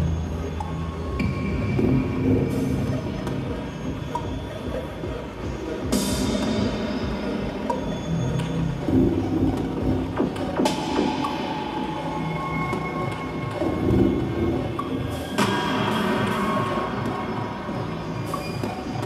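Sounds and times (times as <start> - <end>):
electronic music: 0.0 - 19.0.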